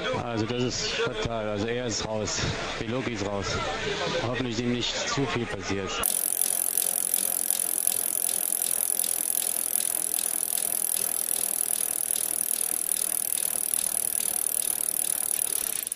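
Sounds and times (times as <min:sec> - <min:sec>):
bicycle freewheel ratchet ticking: 0:06.0 - 0:15.9.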